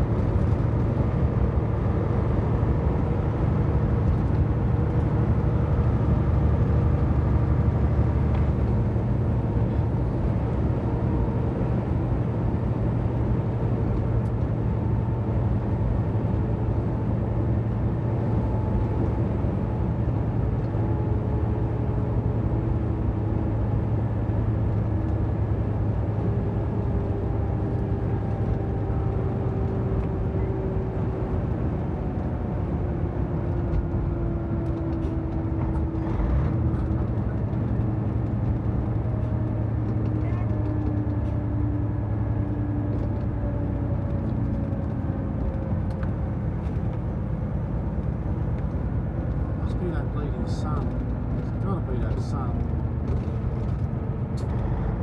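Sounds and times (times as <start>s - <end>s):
truck engine and road drone: 0.0s - 55.0s.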